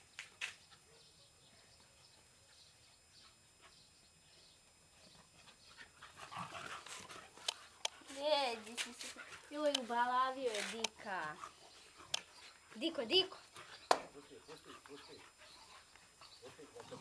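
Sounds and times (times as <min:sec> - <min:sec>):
dogs panting and snuffling: 0:00.2 - 0:17.0.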